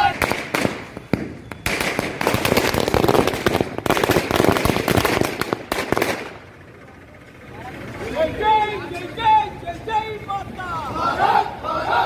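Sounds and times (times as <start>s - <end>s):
firecrackers exploding: 0.0s - 6.6s.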